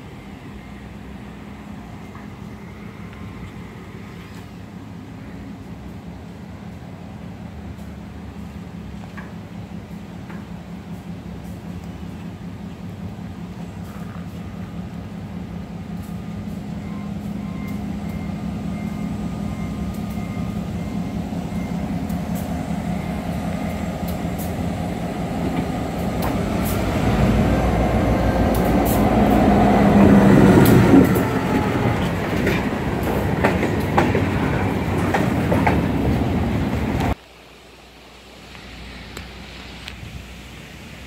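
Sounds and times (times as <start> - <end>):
diesel locomotive engine: 0.0 - 41.0
faint outdoor noise: 0.0 - 41.0
train wheels clicking over rail joints: 7.7 - 37.2.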